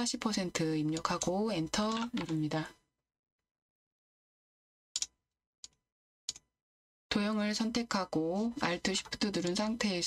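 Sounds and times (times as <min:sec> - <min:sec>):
sharp computer clicks: 0:00.9 - 0:02.4.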